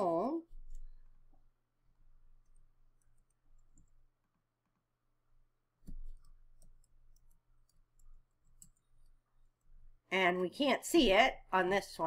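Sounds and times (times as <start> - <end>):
computer mouse clicks: 2.4 - 4.0, 5.8 - 9.2.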